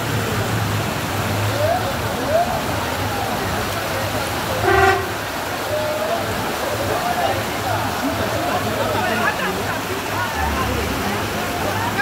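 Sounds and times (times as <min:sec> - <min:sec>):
floodwater rushing down street: 0:00.0 - 0:12.0
short car horn toot: 0:04.6 - 0:05.2.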